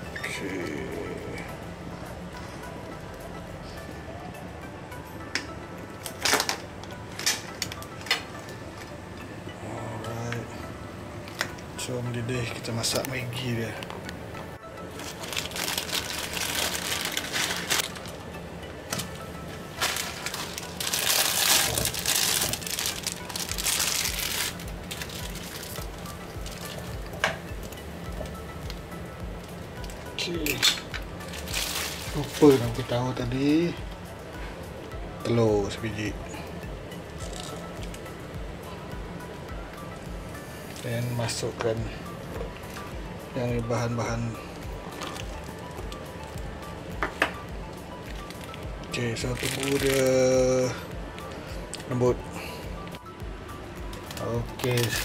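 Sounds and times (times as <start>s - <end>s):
background music: 0.0s - 55.0s
plastic packet crinkling: 14.9s - 18.2s, 19.7s - 26.9s, 31.3s - 32.9s, 45.0s - 45.9s, 48.1s - 50.2s, 53.9s - 55.0s.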